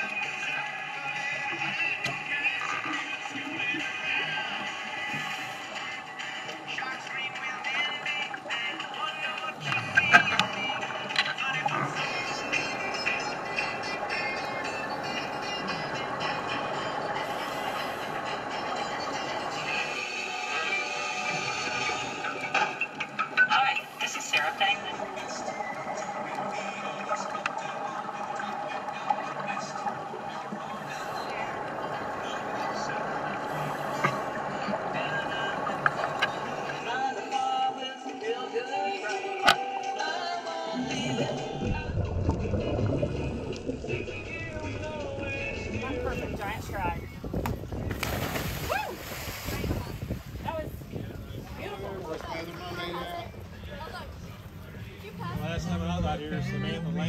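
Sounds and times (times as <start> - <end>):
low rumble of water: 0.0 - 37.9, 40.4 - 57.0
faint music: 0.0 - 57.0.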